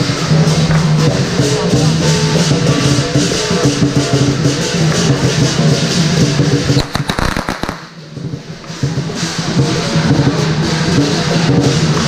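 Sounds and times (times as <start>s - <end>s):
lion dance percussion: 0.0s - 12.0s
firecracker pops: 6.7s - 8.0s.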